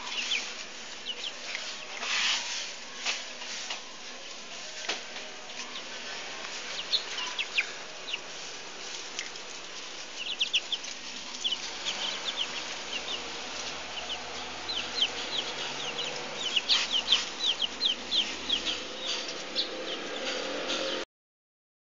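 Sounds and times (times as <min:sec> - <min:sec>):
chicks peeping: 0:00.0 - 0:21.0.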